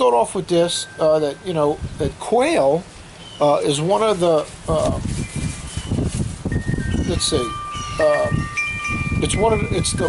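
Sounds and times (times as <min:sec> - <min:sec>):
wind chime ringing: 0:00.6 - 0:02.8, 0:05.0 - 0:10.0.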